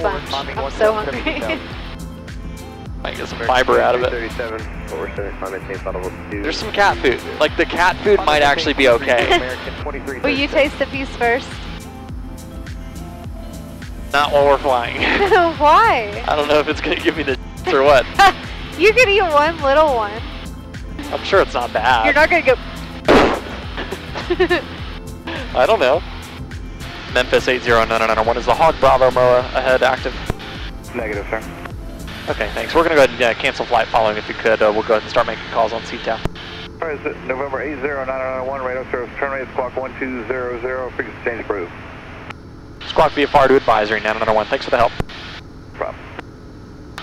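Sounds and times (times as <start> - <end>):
aircraft cockpit drone and hiss: 0.0 - 47.0
laughter over intercom: 8.7 - 9.7, 14.9 - 15.5, 23.8 - 24.7.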